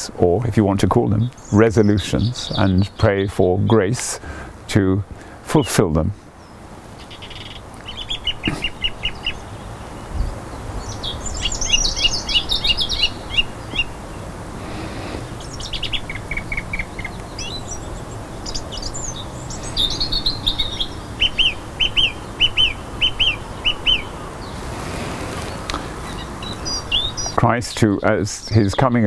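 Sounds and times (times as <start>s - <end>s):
birds chirping and trilling: 0.0s - 29.0s
low outdoor background noise: 0.0s - 29.0s.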